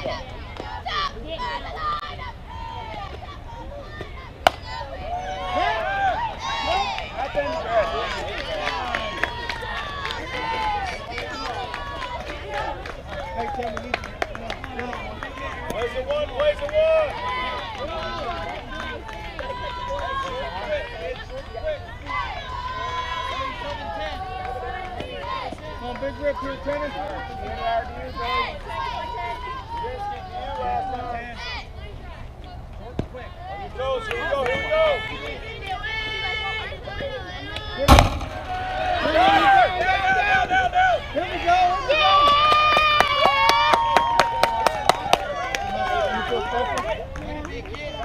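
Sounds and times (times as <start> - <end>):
people shouting and cheering: 0.0 - 13.8, 33.9 - 47.2
bat smacking softball: 4.4 - 4.8, 37.9 - 39.2.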